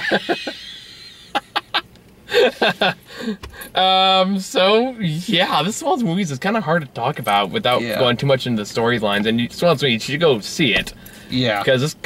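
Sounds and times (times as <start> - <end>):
men laughing hard: 0.0 - 3.4.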